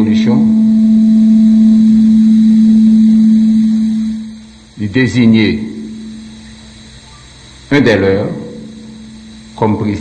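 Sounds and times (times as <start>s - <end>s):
microphone feedback tone: 0.0s - 7.3s.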